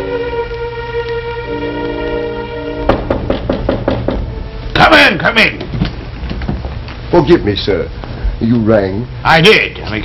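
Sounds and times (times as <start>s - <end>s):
held music chord: 0.0s - 3.3s
knocks on a door: 2.9s - 4.3s.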